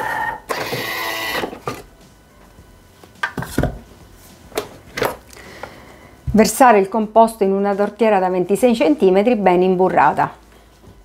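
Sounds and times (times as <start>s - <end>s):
motor whirring: 0.0s - 1.6s.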